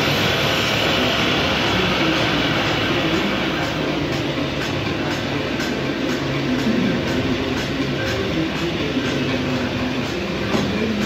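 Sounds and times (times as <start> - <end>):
wood lathe running: 0.0 - 11.0.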